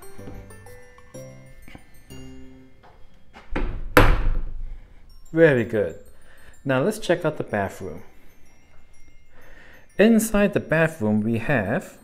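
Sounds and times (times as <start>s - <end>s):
light background music: 0.0s - 4.1s, 4.7s - 12.0s
door thunk shut: 3.5s - 4.6s.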